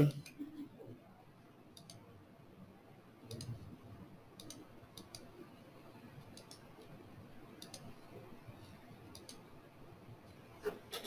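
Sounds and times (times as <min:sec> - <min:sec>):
computer mouse double-click: 0:04.4 - 0:05.3, 0:07.6 - 0:07.9, 0:09.1 - 0:09.4.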